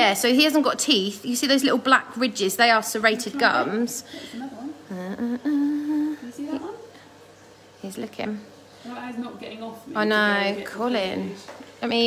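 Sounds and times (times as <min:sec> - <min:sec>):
woman humming: 0:03.4 - 0:06.6.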